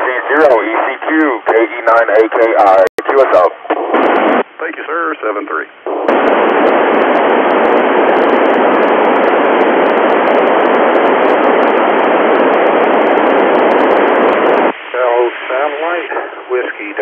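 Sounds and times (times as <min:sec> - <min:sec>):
radio static hiss: 0:00.0 - 0:17.0.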